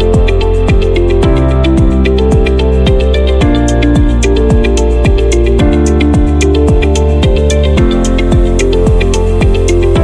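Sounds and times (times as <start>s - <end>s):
electronic music with synth melody: 0.0s - 10.0s
sliding bass notes: 0.0s - 10.0s.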